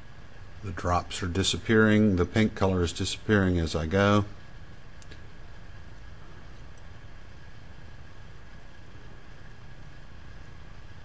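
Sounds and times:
room hiss and low hum: 0.0 - 11.0.

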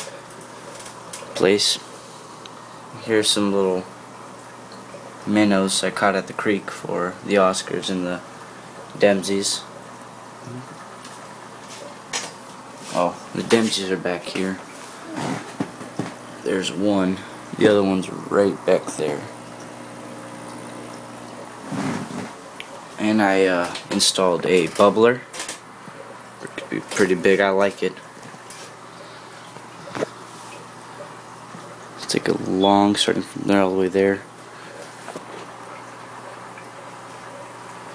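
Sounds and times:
aquarium bubbler fizzing: 0.0 - 37.9.

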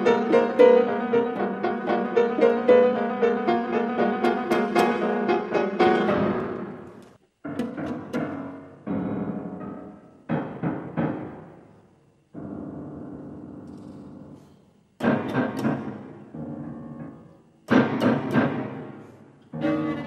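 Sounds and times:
piano playing: 0.0 - 11.6, 15.0 - 20.0
piano chords ringing: 0.0 - 11.7, 15.0 - 20.0.

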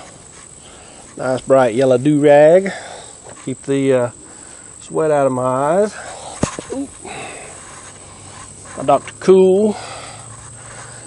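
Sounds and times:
crickets droning: 0.0 - 11.0.

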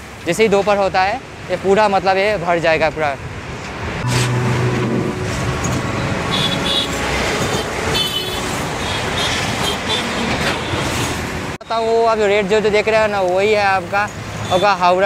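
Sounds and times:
road traffic passing: 0.0 - 15.0
low engine hum: 4.0 - 8.0
short high-pitched horn toots: 4.0 - 9.3.

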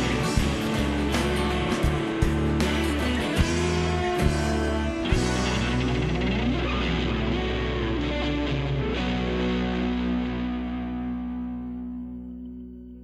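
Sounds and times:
rock band playing: 0.0 - 12.3
distorted electric guitar chord ringing: 0.0 - 13.0.

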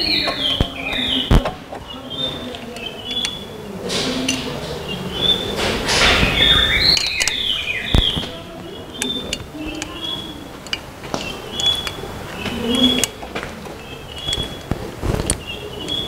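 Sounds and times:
scraping rustle: 0.0 - 16.0
metal bolts clicking and clinking: 2.5 - 4.9, 5.6 - 16.0.

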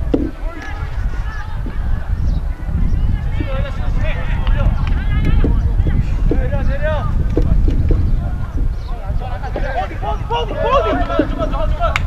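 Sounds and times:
wind rumble on microphone: 0.0 - 12.0
distant players shouting: 0.1 - 12.0.

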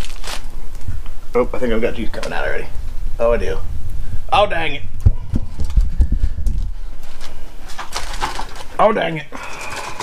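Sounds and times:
aluminium foil crinkling: 0.0 - 1.0, 7.0 - 8.8
low rumble: 2.6 - 7.0.

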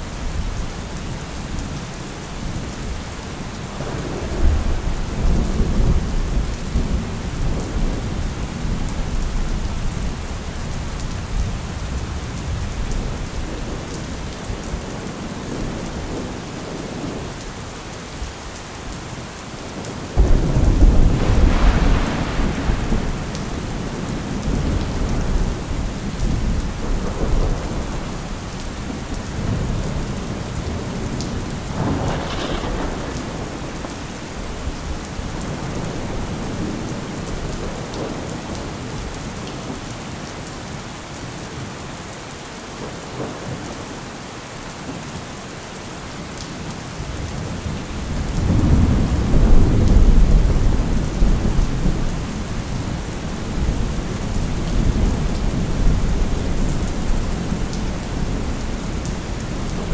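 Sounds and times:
steady rain: 0.0 - 59.9
thunder rumbling: 20.2 - 38.8, 47.6 - 59.9.

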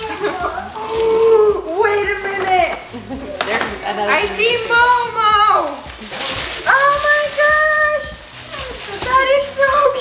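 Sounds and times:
gift wrapping being torn: 0.0 - 10.0.

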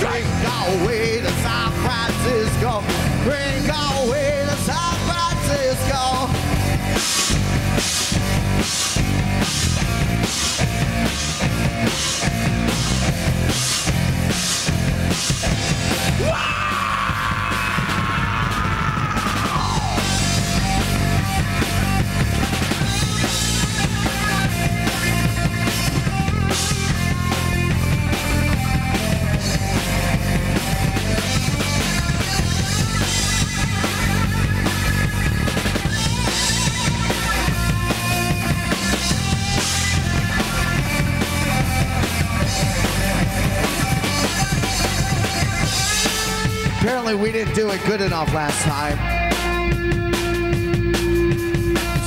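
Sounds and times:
drum kit: 0.0 - 52.0
electric guitars: 0.0 - 52.0
live rock band playing: 0.0 - 52.0.

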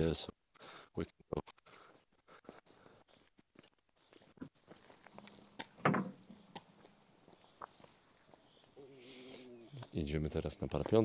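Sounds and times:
footsteps on paved path: 1.7 - 11.0.

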